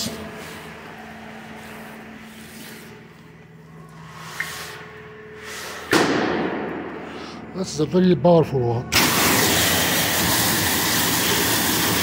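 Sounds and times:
steady low hum: 0:00.0 - 0:11.0
high-pressure water spray: 0:09.0 - 0:12.0.

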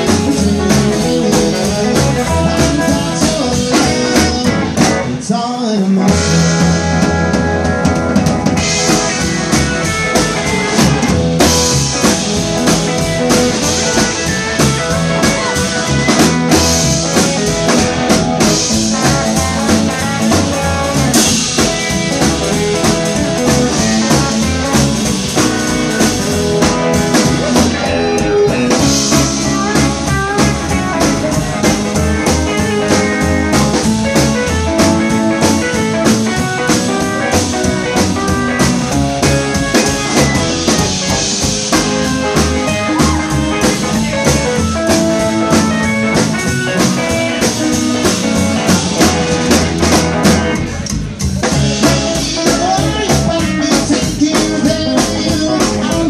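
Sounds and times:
upright double bass: 0:00.0 - 0:05.2, 0:06.1 - 0:56.0
drum kit with cymbals: 0:00.0 - 0:05.3, 0:06.0 - 0:56.0
electric guitars: 0:00.0 - 0:56.0.

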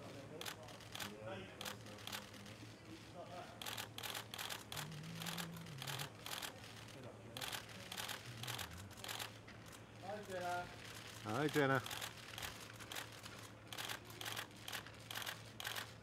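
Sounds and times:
camera shutters clicking: 0:00.4 - 0:02.5, 0:03.6 - 0:16.0.

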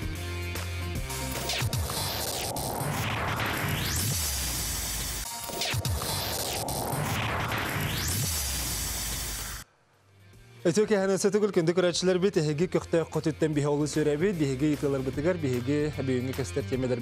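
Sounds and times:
glitchy electronic music: 0:01.0 - 0:09.6.

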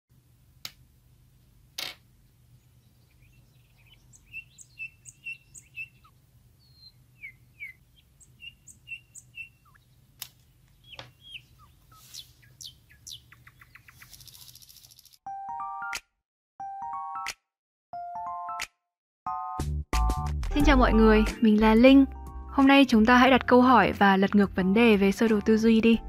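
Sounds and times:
small birds chirping: 0:02.4 - 0:15.2
quick ticks: 0:13.3 - 0:15.2.

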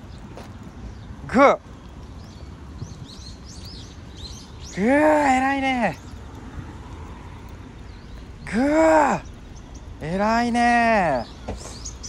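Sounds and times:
low outdoor rumble: 0:00.0 - 0:12.0
small birds chirping: 0:00.0 - 0:12.0.

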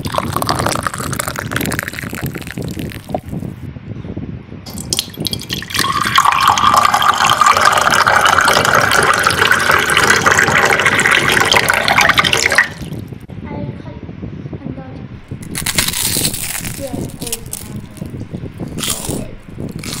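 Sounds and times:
soft liquid sounds: 0:00.0 - 0:03.5, 0:04.7 - 0:13.3.

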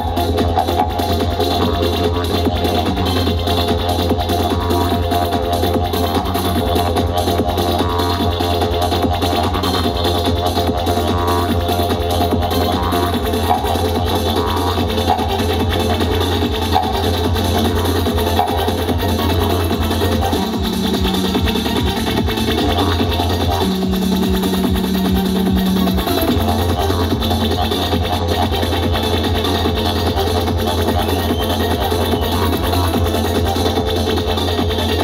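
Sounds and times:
didgeridoo: 0:00.0 - 0:35.0
electronic dance music: 0:00.0 - 0:35.0.

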